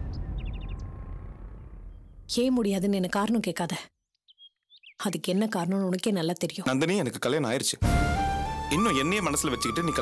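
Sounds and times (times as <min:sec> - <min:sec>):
low rumble: 0:00.0 - 0:02.4
small bird chirping: 0:03.9 - 0:07.0.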